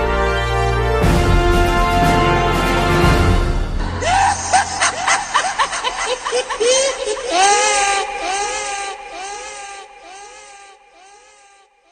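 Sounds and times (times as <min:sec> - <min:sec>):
high-pitched cackling laugh: 0:03.9 - 0:11.9.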